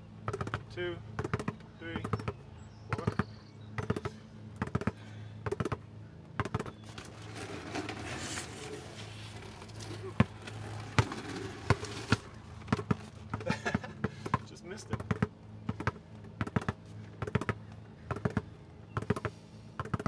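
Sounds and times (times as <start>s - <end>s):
basketball bouncing on asphalt: 0.2s - 8.0s, 8.8s - 20.0s.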